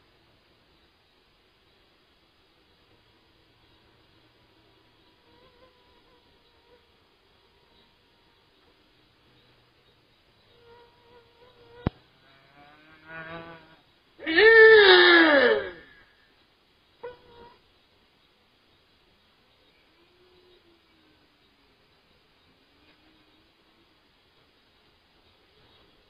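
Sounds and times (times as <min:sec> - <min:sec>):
long rising and falling cry: 0:12.6 - 0:16.2.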